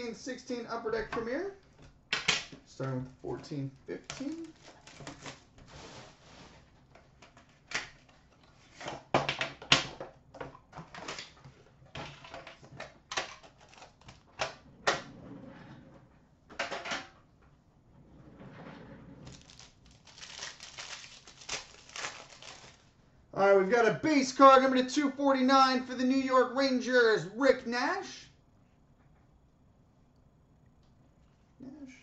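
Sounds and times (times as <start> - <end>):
cards rustling: 3.3 - 5.4, 19.3 - 22.9.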